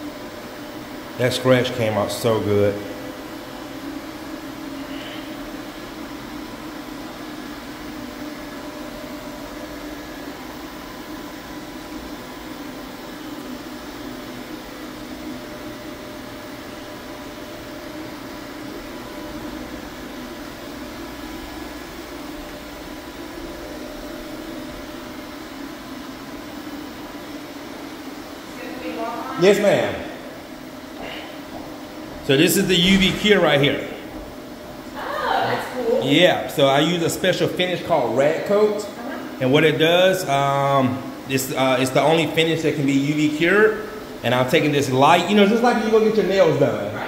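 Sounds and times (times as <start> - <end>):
floor-curing machine humming: 0.0 - 47.0.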